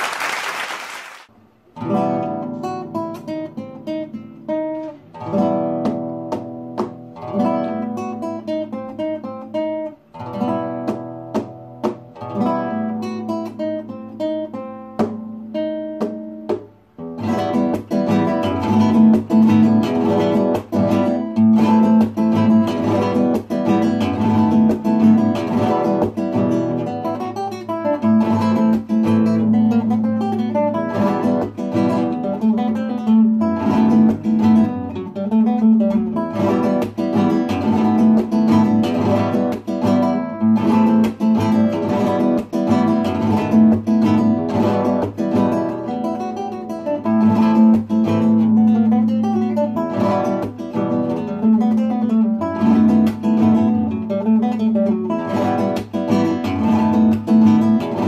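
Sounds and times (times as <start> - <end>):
classical guitar strumming: 1.3 - 58.0.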